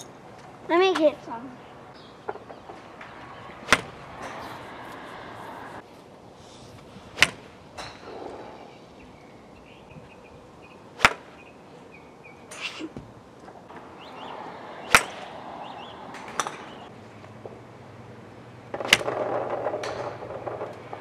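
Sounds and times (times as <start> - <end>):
golf club striking balls: 2.2 - 5.1, 7.2 - 8.4, 11.0 - 11.4, 14.8 - 15.4, 16.0 - 16.9, 18.7 - 21.0.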